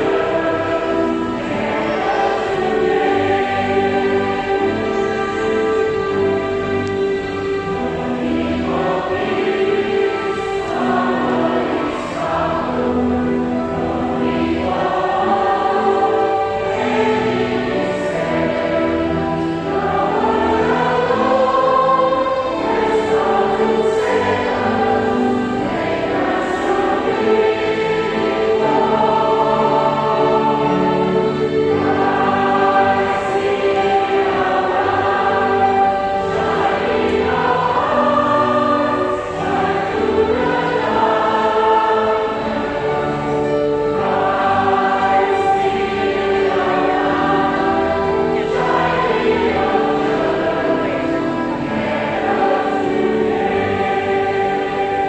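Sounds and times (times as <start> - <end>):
choir singing held notes: 0.0 - 55.0.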